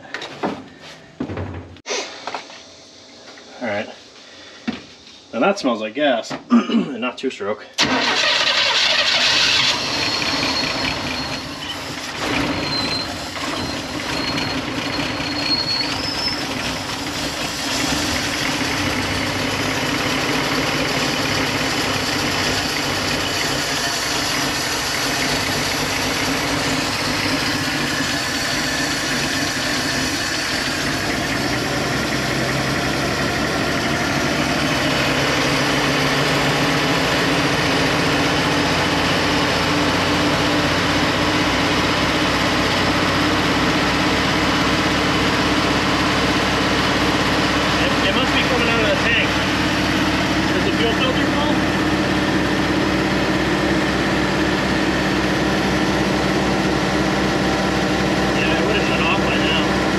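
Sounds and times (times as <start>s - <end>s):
van engine running: 7.8s - 59.9s.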